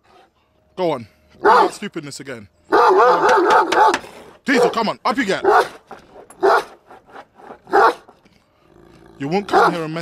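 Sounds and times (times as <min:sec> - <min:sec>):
dog barking: 0:01.4 - 0:01.8, 0:02.7 - 0:04.8, 0:05.4 - 0:05.8, 0:06.4 - 0:06.8, 0:07.7 - 0:08.1, 0:09.5 - 0:09.9.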